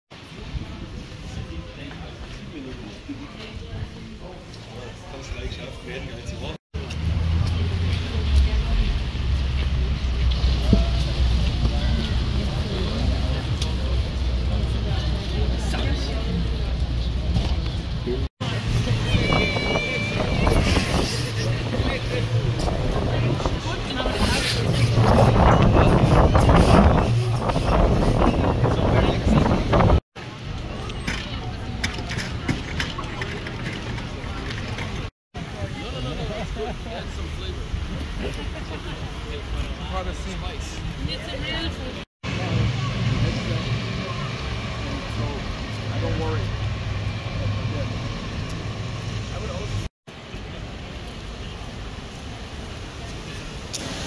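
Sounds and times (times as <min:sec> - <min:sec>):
faint voices: 0:00.2 - 0:53.7
traffic running past: 0:06.8 - 0:54.0
people talking: 0:07.4 - 0:30.0, 0:30.6 - 0:46.6.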